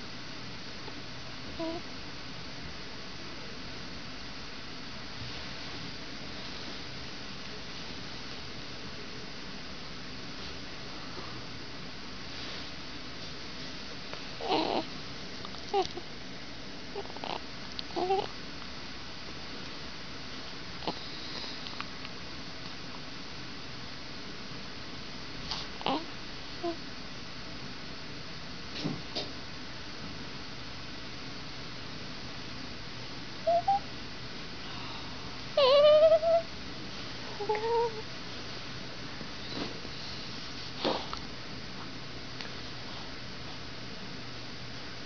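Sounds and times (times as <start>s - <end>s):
baby cooing: 1.6s - 1.8s, 14.4s - 14.9s, 15.7s - 16.0s, 18.0s - 18.3s, 25.9s - 26.8s, 33.5s - 33.8s, 35.6s - 36.4s, 37.4s - 38.0s.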